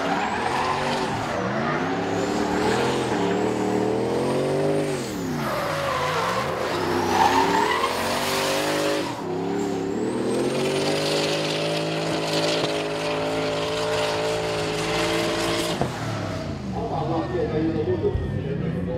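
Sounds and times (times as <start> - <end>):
car engine revving hard: 0.0 - 16.6.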